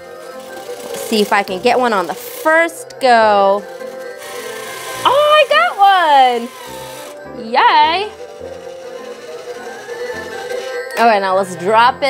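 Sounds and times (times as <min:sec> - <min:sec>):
circus music from toy machine: 0:00.0 - 0:12.0.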